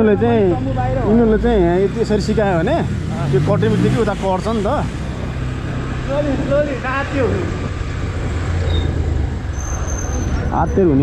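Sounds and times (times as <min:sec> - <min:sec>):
road and wind noise: 0:00.0 - 0:11.0.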